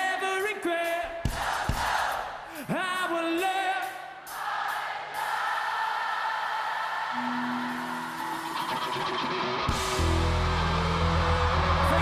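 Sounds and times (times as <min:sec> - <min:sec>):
crowd singing together: 0:01.2 - 0:02.6, 0:04.1 - 0:08.7.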